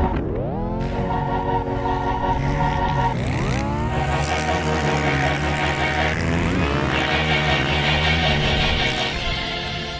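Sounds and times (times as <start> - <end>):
background music: 0.0 - 9.9
engine revving: 0.0 - 9.9.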